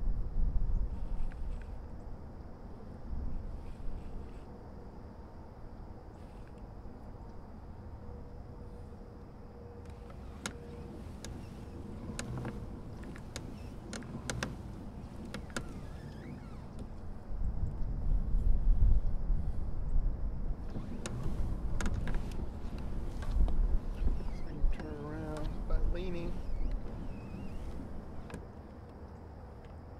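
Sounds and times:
kayak rumbling and knocking: 0:09.9 - 0:19.6, 0:20.4 - 0:28.6.

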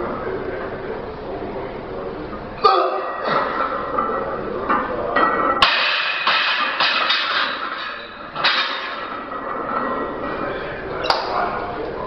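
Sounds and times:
loud background din: 0:00.0 - 0:12.0
barbell clanking on metal rack: 0:03.0 - 0:10.3.

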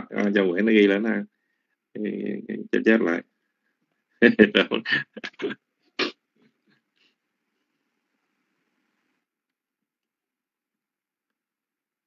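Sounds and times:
person chuckling: 0:04.7 - 0:06.1.

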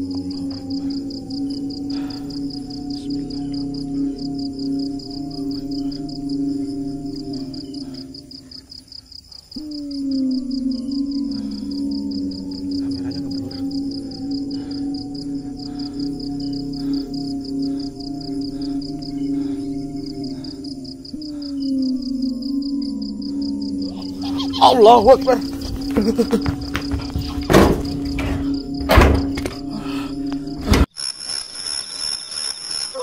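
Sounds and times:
eerie ambient drone music: 0:00.0 - 0:30.9
insects chirping: 0:00.0 - 0:33.0.

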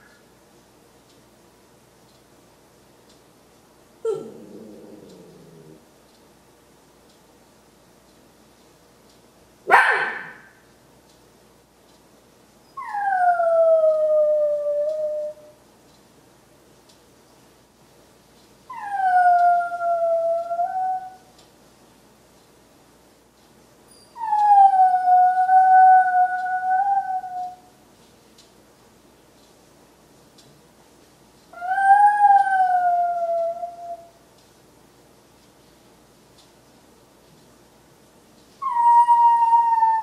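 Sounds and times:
dog howling: 0:12.8 - 0:15.5, 0:18.7 - 0:21.2, 0:24.2 - 0:27.6, 0:31.6 - 0:34.1, 0:38.6 - 0:40.0.

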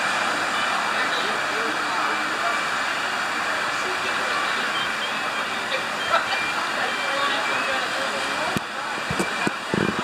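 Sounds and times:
faint distant voices: 0:00.0 - 0:10.0
surf washing: 0:00.0 - 0:10.0.

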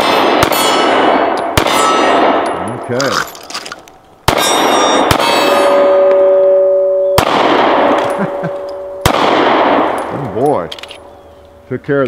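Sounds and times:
steel target ringing: 0:00.0 - 0:03.0, 0:04.3 - 0:10.2
pistol shots with echo: 0:00.0 - 0:03.4, 0:04.2 - 0:11.1.

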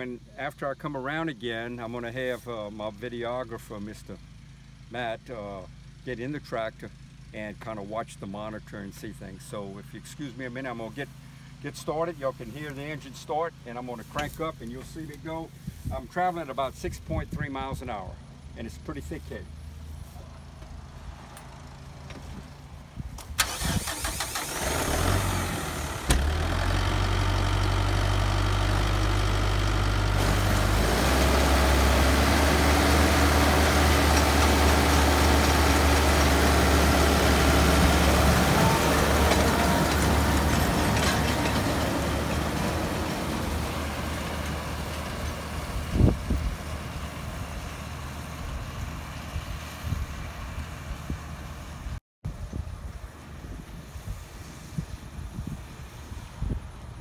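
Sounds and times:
diesel tractor engine: 0:00.0 - 0:52.0.

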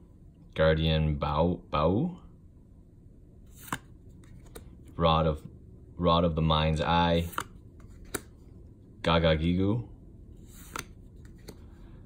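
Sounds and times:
cards sliding swish: 0:03.5 - 0:04.8, 0:07.1 - 0:08.4, 0:10.4 - 0:11.9.

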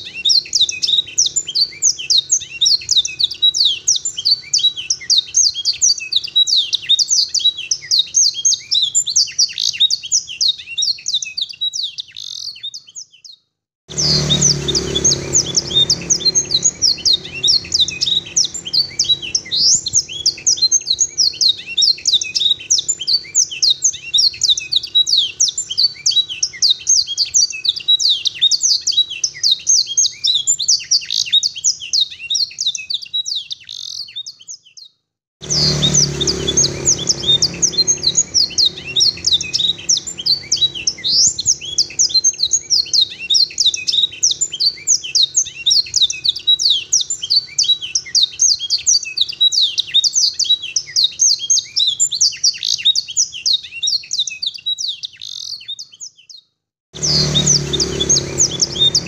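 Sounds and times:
canary singing chirps and trills: 0:00.0 - 0:59.0.

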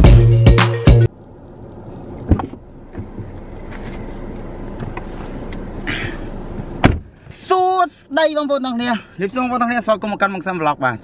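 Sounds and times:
low rumble in car cabin: 0:01.0 - 0:11.0.

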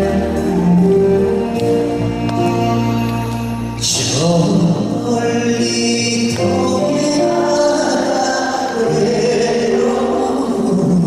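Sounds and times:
band accompaniment: 0:00.0 - 0:11.0
man singing into a microphone: 0:03.8 - 0:11.0.

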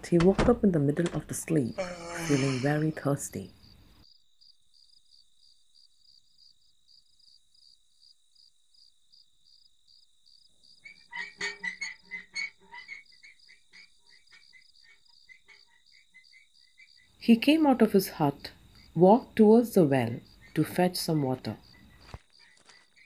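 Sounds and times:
crickets chirping: 0:00.7 - 0:23.0
frog croaks: 0:01.7 - 0:03.1.

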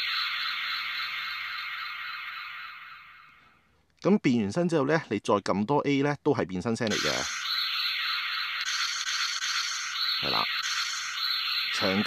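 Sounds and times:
toy sound effect from speaker: 0:06.8 - 0:07.5, 0:08.6 - 0:12.0.

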